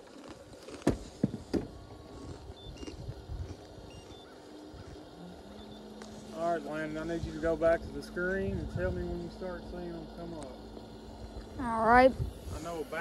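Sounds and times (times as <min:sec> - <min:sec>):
steady low hum: 0:00.0 - 0:13.0
boat rumble: 0:04.6 - 0:13.0.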